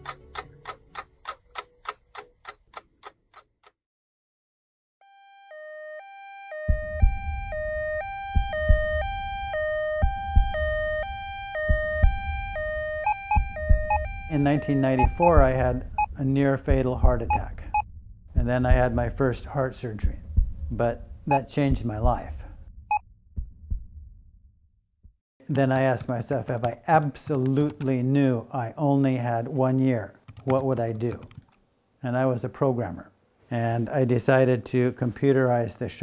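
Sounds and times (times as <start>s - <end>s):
two-tone ambulance siren: 5.0s - 15.5s
low hum: 6.7s - 25.1s
heartbeat thumps: 6.7s - 25.2s.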